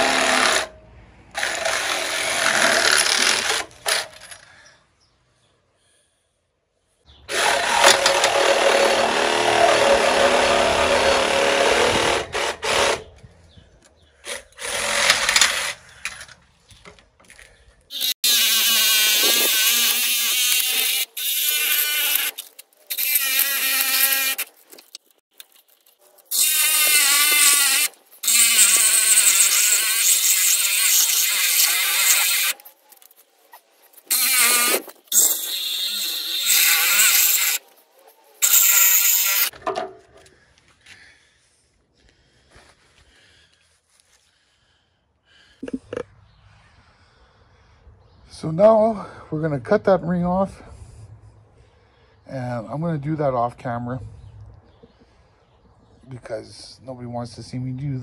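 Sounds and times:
angle grinder cutting metal: 0.0 - 0.7, 7.3 - 13.1, 17.9 - 25.1, 26.2 - 33.2, 33.9 - 37.8, 38.4 - 39.6.

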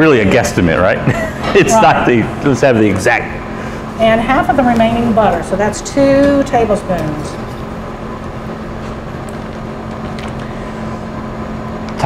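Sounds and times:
kitchen ventilation hum: 0.0 - 12.0.

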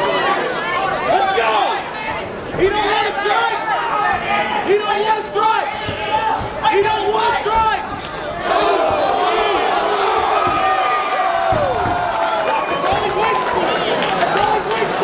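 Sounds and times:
people shouting and yelling: 0.0 - 15.0
crowd roar: 2.6 - 15.0.

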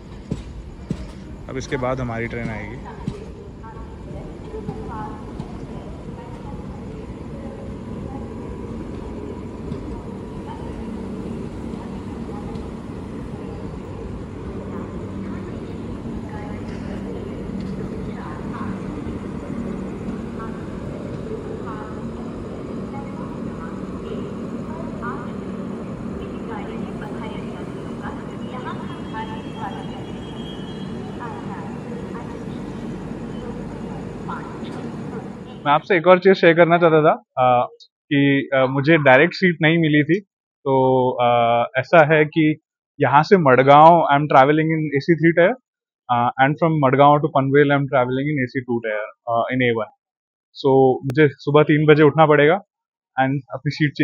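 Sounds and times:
train engine humming: 0.0 - 36.6
faint indistinct voices: 0.0 - 40.2, 46.1 - 49.9.

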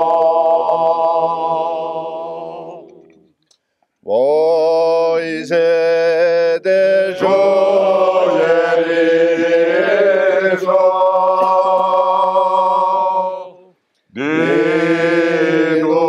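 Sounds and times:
men singing unaccompanied: 0.0 - 3.3, 4.1 - 16.0.

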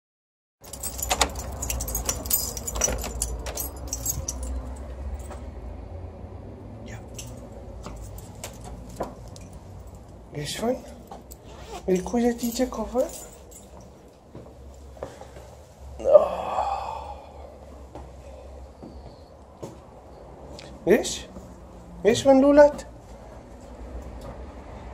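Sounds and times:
keys jangling in a lock: 0.6 - 5.4, 6.9 - 14.3
person sighing: 16.0 - 17.5.

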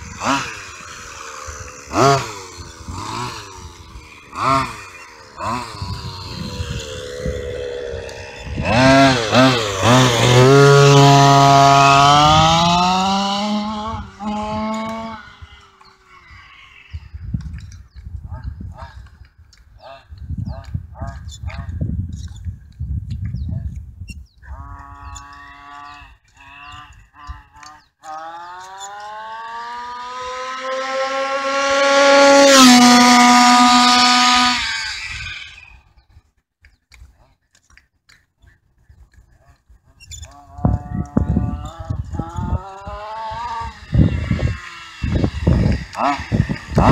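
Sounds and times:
two-stroke engine buzzing: 0.0 - 18.9, 24.5 - 35.9, 40.3 - 46.9.

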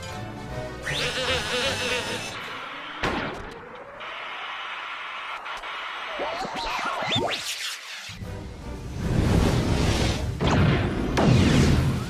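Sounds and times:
film score music: 0.0 - 4.4, 7.1 - 12.0.

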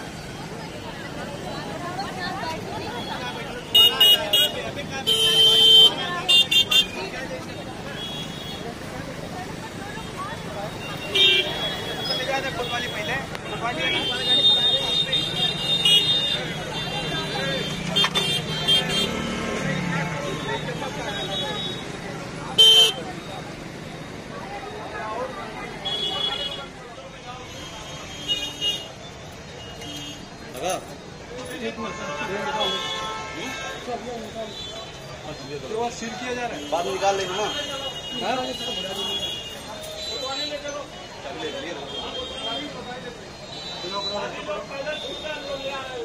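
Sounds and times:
busy street noise: 0.0 - 46.0
crowd voices: 0.0 - 46.0
vehicle horn honks: 3.6 - 7.0, 10.9 - 19.2, 22.6 - 23.0, 31.7 - 34.9.

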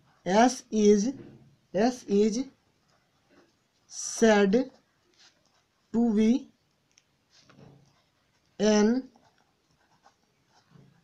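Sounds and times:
pen writing on paper: 7.8 - 11.0.

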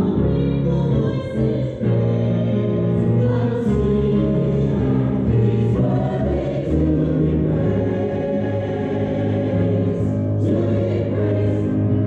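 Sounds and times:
church choir singing: 0.0 - 12.0.

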